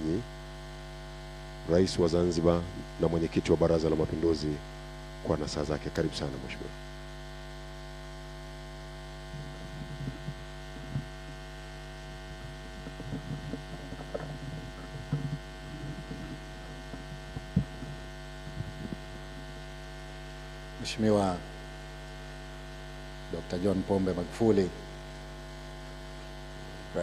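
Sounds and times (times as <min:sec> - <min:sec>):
electrical mains hum: 0:00.0 - 0:27.0
faint shuffling and footsteps: 0:09.3 - 0:19.4.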